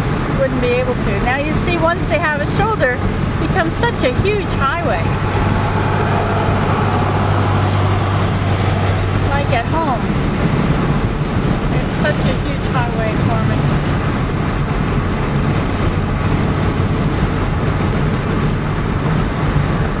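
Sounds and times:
car engine hum at highway speed: 0.0s - 20.0s
tyre and wind noise: 0.0s - 20.0s.

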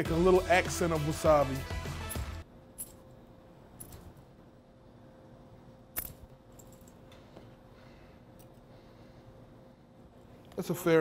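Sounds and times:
music: 0.0s - 2.4s
faint steady hum: 0.0s - 11.0s.

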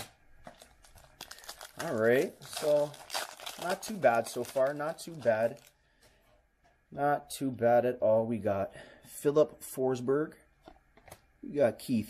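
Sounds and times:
foil wrapper crinkling: 0.0s - 5.8s.

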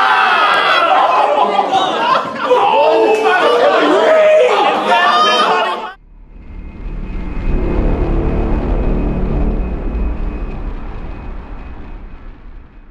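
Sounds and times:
deep rumble: 6.0s - 12.9s.

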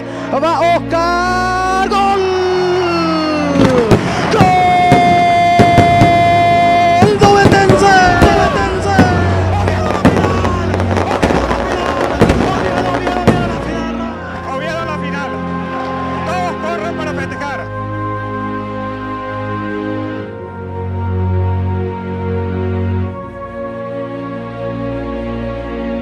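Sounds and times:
firecrackers banging: 3.5s - 14.5s
loud pitched tones: 3.5s - 15.5s.

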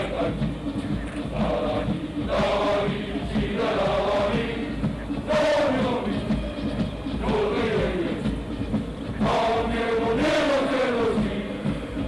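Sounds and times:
troops chanting in unison: 0.0s - 0.7s, 1.3s - 6.4s, 7.2s - 8.5s, 9.2s - 12.0s.

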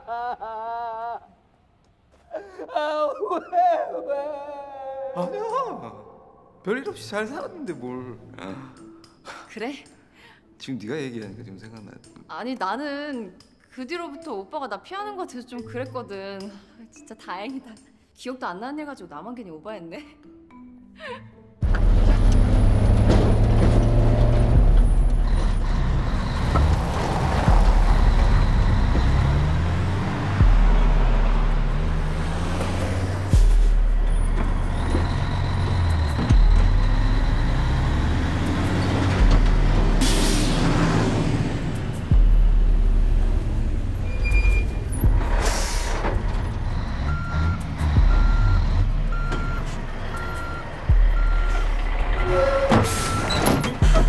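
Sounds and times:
low pulsing music score: 21.6s - 43.9s
truck engine running: 21.6s - 54.0s
regular beeping: 46.0s - 54.0s.

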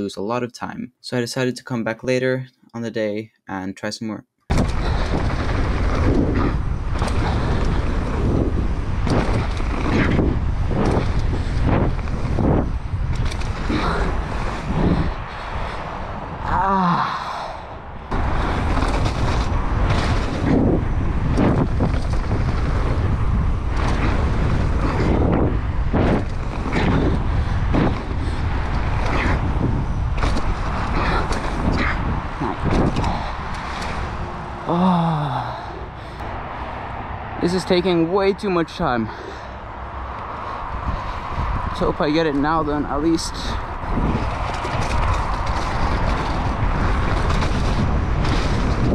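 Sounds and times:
bike rattles and knocks: 4.5s - 16.6s, 18.0s - 34.4s, 40.4s - 48.9s
bike tyres on dirt: 4.5s - 48.9s
wind rushing over microphone: 4.5s - 48.9s.

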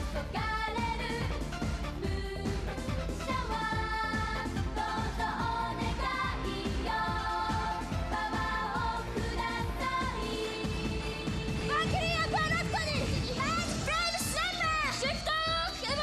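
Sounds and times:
woman singing pop song: 0.1s - 16.0s.

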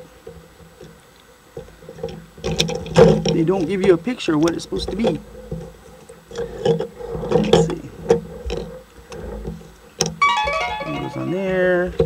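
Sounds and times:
tune of pitched notes: 10.2s - 11.9s.

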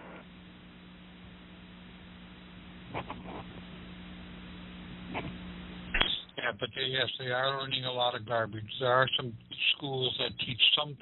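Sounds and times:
telephone line hum and hiss: 0.0s - 11.0s.

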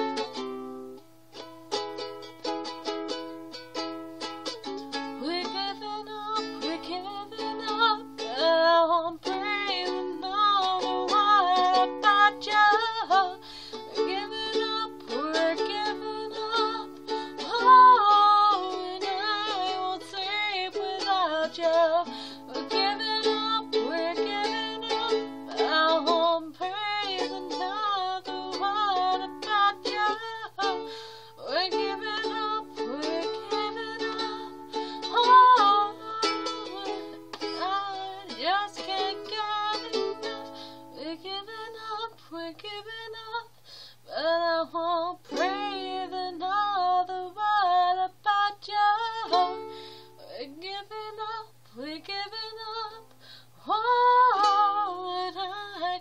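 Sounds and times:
ukulele strummed chords: 0.0s - 43.4s, 45.0s - 51.4s, 53.8s - 56.0s
woman singing: 4.4s - 56.0s.

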